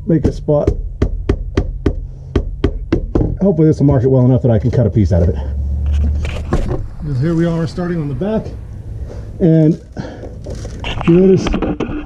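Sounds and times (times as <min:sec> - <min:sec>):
steady low hum: 0:00.0 - 0:11.2
fist pounding foam board: 0:00.6 - 0:03.4.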